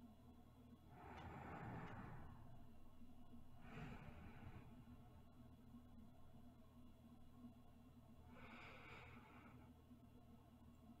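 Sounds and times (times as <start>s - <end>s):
woman breathing softly: 0.9s - 5.4s, 8.2s - 10.0s.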